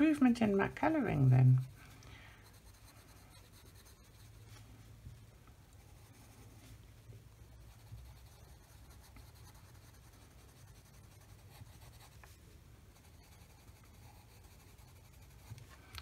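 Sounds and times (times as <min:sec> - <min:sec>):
low steady hum: 0:00.0 - 0:16.0
pencil scratching on paper: 0:00.8 - 0:01.8, 0:02.4 - 0:04.5, 0:05.8 - 0:06.6, 0:07.6 - 0:15.6.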